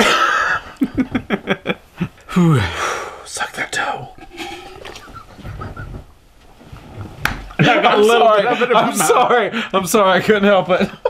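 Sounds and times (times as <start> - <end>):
man gulping and stifling laugh: 0.0 - 2.7, 4.2 - 6.2.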